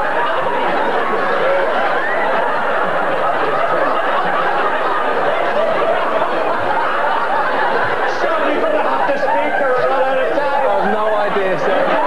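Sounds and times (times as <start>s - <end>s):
audience laughing: 0.0s - 12.0s
overlapping voices chattering: 0.0s - 12.0s.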